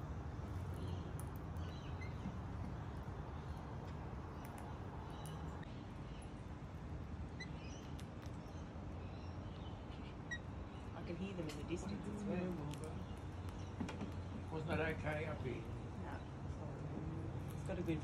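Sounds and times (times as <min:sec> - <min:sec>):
distant bird chirps: 0:00.5 - 0:06.4, 0:07.3 - 0:12.0.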